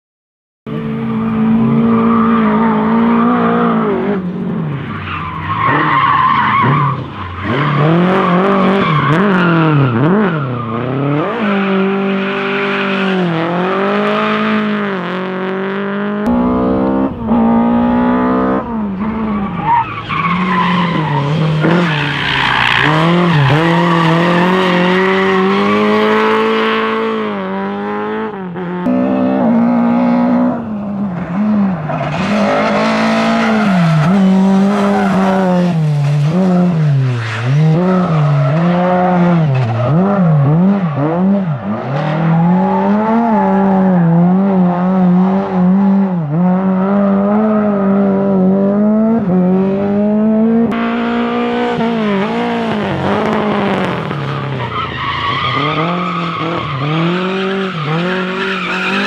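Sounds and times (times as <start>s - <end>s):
rally car engines revving: 0.7s - 59.0s
tyres squealing on tarmac: 4.8s - 10.8s, 19.1s - 26.2s, 54.1s - 59.0s.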